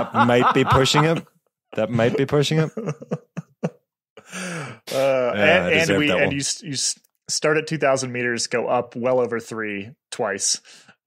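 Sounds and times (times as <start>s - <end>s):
breathy voiced sound: 4.2s - 5.3s.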